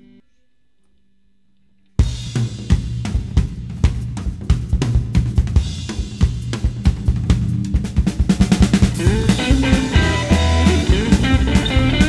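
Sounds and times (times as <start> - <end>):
drum kit beat: 2.0 - 12.0
upright double bass: 3.0 - 12.0
bending electric guitar notes: 8.7 - 12.0.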